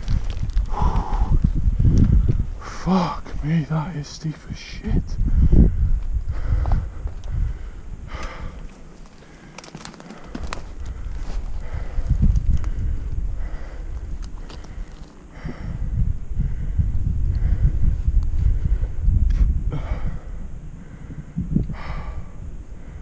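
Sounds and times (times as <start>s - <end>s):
man breathing heavily: 0.0s - 23.0s
wind buffeting microphone: 0.0s - 23.0s.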